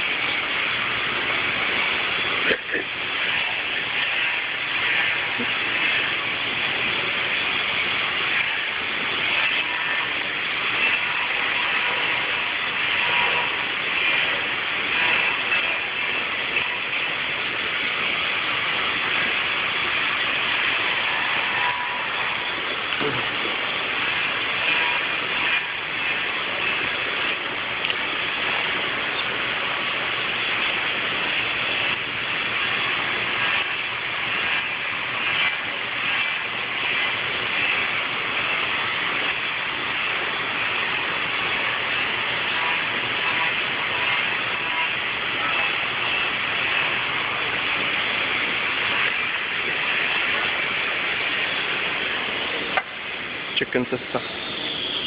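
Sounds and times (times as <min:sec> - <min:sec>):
machinery running: 0:00.0 - 0:55.0.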